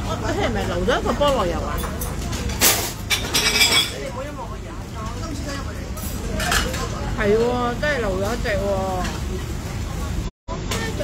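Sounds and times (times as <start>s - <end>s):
diners chattering: 0.0s - 11.0s
dishes clattering: 1.2s - 4.2s, 6.2s - 7.5s.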